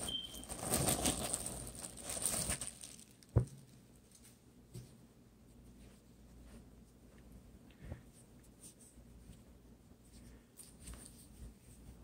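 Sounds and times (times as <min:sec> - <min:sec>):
plastic bag crinkling: 0:00.0 - 0:03.4.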